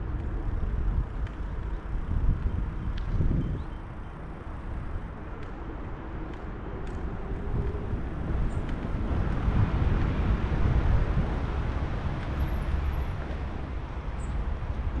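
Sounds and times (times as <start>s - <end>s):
outdoor traffic noise: 0.0s - 15.0s.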